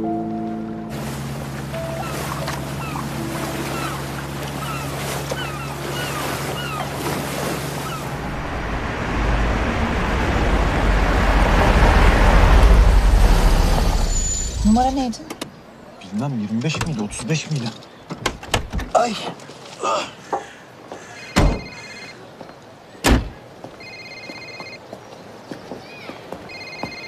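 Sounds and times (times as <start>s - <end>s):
boat engine humming: 0.0s - 15.9s
churning water: 0.8s - 15.2s.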